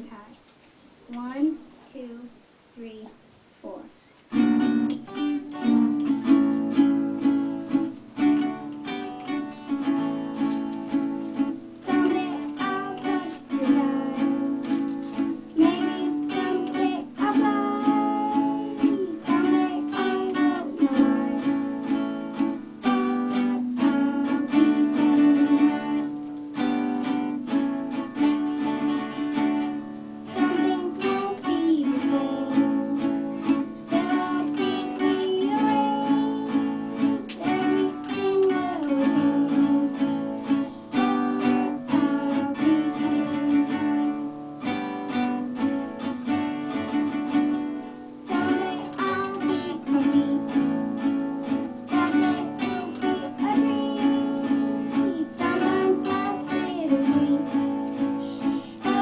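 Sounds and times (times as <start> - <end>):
acoustic guitars strummed: 4.3 - 59.0
boy singing: 5.1 - 27.2, 28.2 - 45.4, 46.8 - 59.0.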